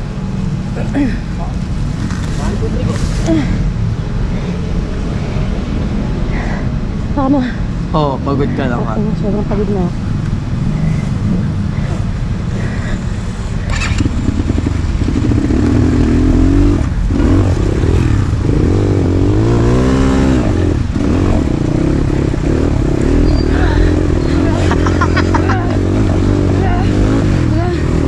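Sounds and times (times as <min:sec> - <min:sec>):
dirt bike engine revving: 0:13.6 - 0:28.0.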